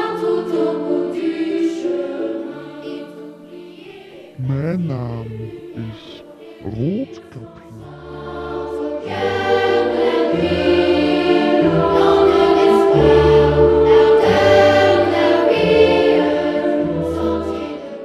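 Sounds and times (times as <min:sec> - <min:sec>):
girls choir singing held chords: 0:00.0 - 0:18.0
low held notes: 0:04.4 - 0:08.0.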